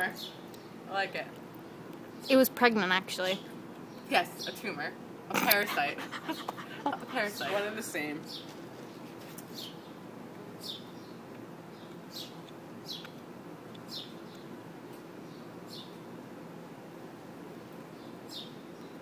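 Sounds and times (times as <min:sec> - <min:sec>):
low background hum: 0:00.0 - 0:19.0
bird chirping: 0:06.2 - 0:07.5, 0:10.6 - 0:13.2, 0:13.8 - 0:14.6, 0:15.2 - 0:16.0, 0:17.9 - 0:19.0.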